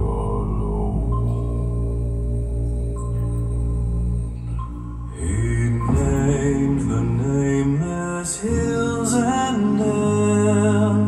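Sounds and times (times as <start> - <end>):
a cappella singing: 0.0 - 11.0
deep sung bass drone: 0.0 - 11.0.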